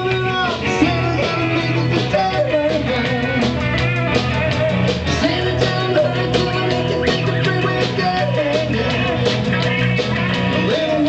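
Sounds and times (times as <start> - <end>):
man singing into microphone: 0.0 - 3.7, 5.1 - 9.4, 10.4 - 11.0
bass line: 0.0 - 11.0
drums: 0.0 - 11.0
electric guitar: 0.0 - 11.0.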